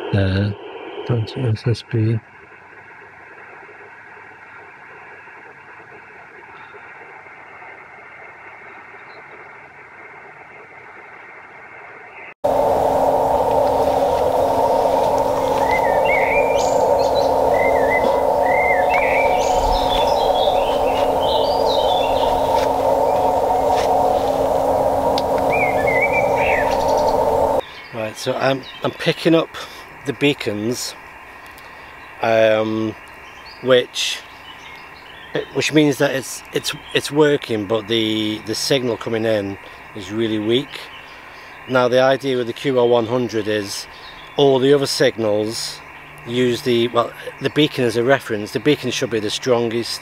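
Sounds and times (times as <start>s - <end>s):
filtered receiver noise: 0.0s - 1.6s, 12.5s - 27.6s
radio receiver hiss: 0.0s - 2.2s, 12.5s - 27.6s
faint steady tones: 0.0s - 50.0s
birds singing: 12.0s - 50.0s
steady low tone: 12.4s - 27.6s.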